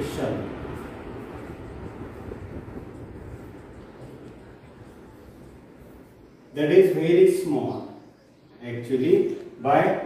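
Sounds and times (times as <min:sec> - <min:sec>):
low background rumble: 0:00.0 - 0:06.5.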